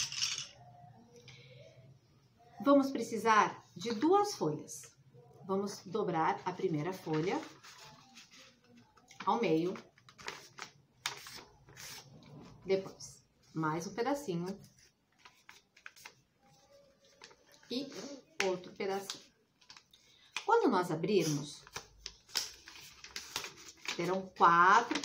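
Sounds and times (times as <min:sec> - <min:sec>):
paper rustling and crinkling: 0:06.4 - 0:13.0, 0:14.4 - 0:18.1, 0:19.0 - 0:20.5, 0:21.2 - 0:25.0.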